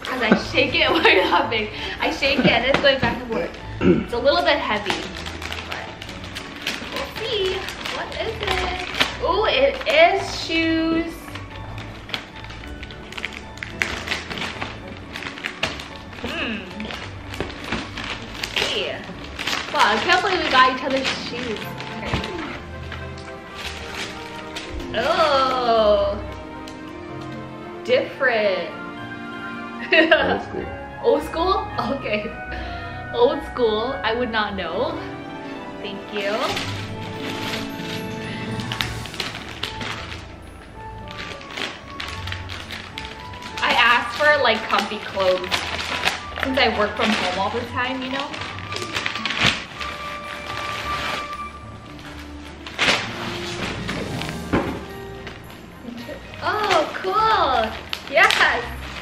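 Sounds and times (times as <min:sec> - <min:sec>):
wrapping paper crinkling: 0:00.0 - 0:28.0, 0:34.7 - 0:59.0
background music: 0:00.0 - 0:59.0.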